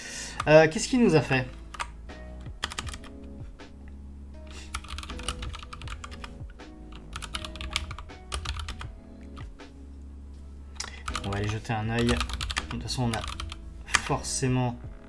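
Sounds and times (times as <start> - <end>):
computer keyboard typing: 1.5 - 3.2, 4.6 - 9.5, 10.8 - 14.1.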